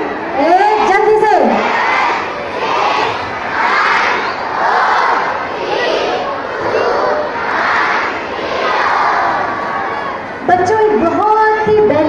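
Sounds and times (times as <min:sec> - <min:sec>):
crowd of children cheering: 0:00.0 - 0:10.4.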